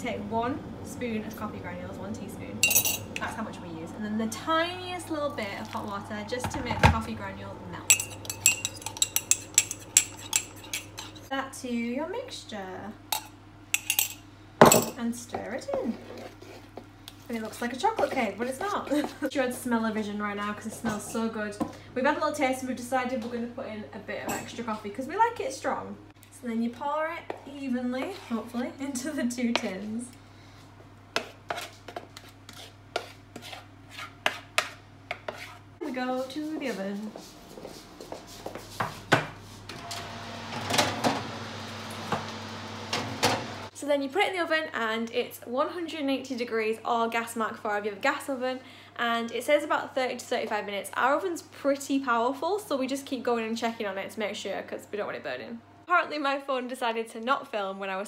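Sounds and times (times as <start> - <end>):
metal spoon clinking ceramic: 2.6 - 3.1, 7.9 - 11.2, 13.2 - 14.2
spoon clatter: 7.9 - 11.2
oven door opening: 39.7 - 43.7.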